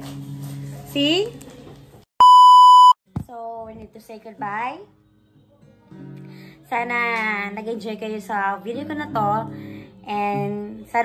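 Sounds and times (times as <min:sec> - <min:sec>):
electronic bleep: 0:02.2 - 0:03.0.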